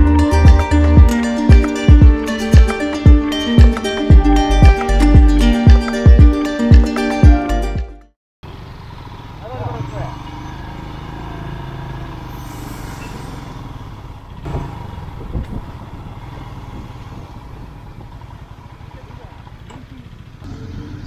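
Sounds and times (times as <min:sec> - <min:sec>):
motorcycle engine running: 0:00.0 - 0:07.4, 0:08.4 - 0:12.2, 0:13.2 - 0:21.0
wind and road noise: 0:08.4 - 0:21.0.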